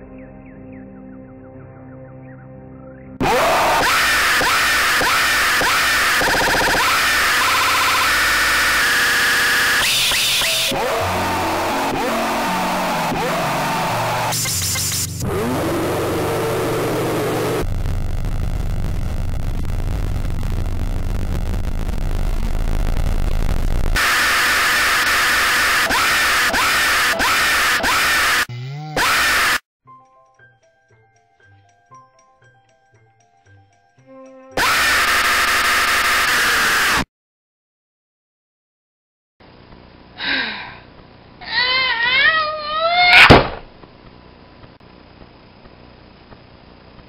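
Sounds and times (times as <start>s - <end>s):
screaming: 3.2s - 14.4s, 24.0s - 29.6s, 34.6s - 37.0s, 41.4s - 43.4s
harsh distorted noise: 3.2s - 29.6s, 34.6s - 37.1s.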